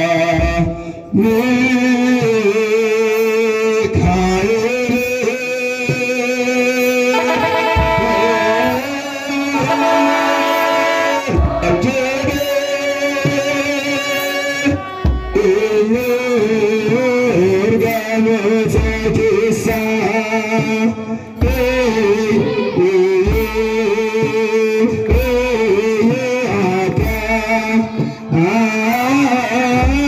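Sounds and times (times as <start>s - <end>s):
deep drum beat: 0.0s - 30.0s
choir chanting in unison: 7.2s - 15.3s, 21.8s - 24.3s.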